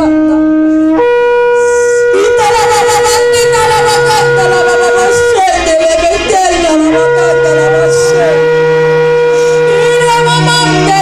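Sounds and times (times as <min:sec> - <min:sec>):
worship music on keyboard: 0:00.0 - 0:11.0
person's voice: 0:01.6 - 0:08.6, 0:09.4 - 0:11.0.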